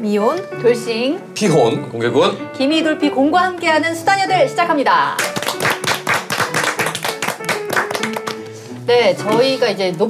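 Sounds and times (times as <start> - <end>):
background music: 0.0 - 10.0
people clapping: 5.1 - 8.6.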